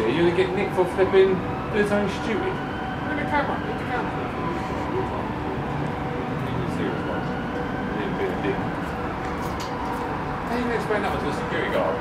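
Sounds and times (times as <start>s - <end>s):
muffled voices: 0.2s - 9.0s.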